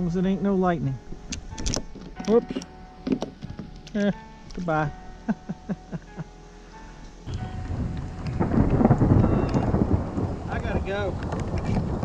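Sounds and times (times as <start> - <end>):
rain: 0.0 - 12.0
thunder rumbling: 7.3 - 12.0.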